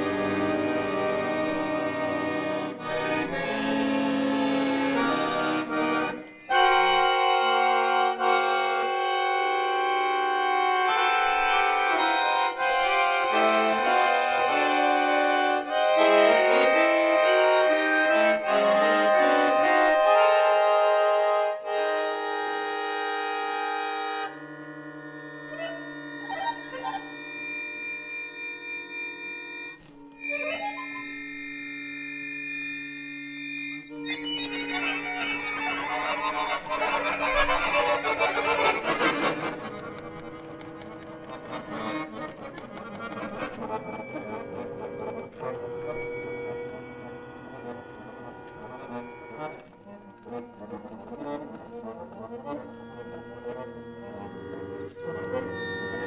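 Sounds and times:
accordion playing jazz: 0:00.0 - 0:56.0.

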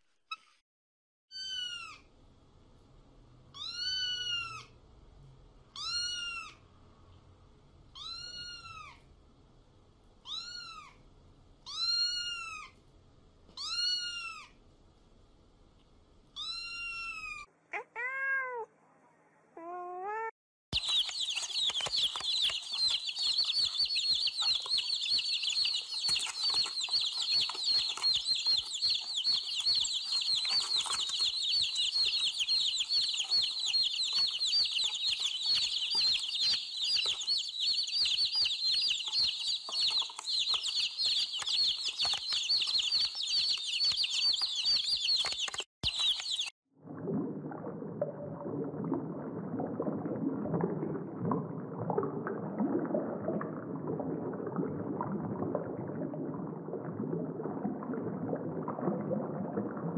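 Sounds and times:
cat meowing: 0:03.6 - 0:04.7, 0:08.0 - 0:09.0, 0:10.3 - 0:11.0, 0:16.4 - 0:18.7
baby chicks cheeping: 0:20.8 - 0:46.5.

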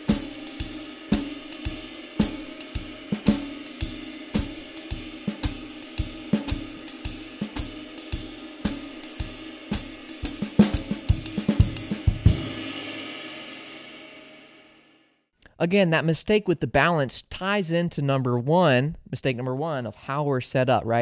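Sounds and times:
hi-hat: 0:00.0 - 0:12.1
snare drum played quietly: 0:00.0 - 0:12.6
ride cymbal: 0:00.0 - 0:13.1.

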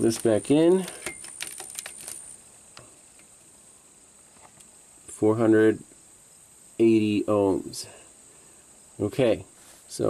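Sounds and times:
test leads and meter clicking: 0:00.0 - 0:03.3.

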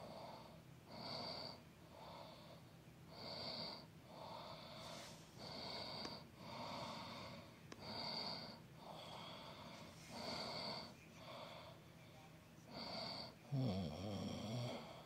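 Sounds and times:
heavy rhythmic breathing: 0:00.0 - 0:15.0.

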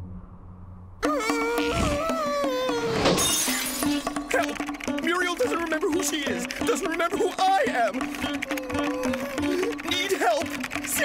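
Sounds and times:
background music: 0:01.0 - 0:11.0.

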